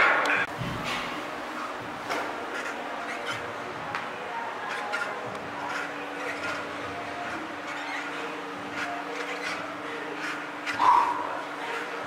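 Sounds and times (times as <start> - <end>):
low hum of a gym: 0.0 - 12.0.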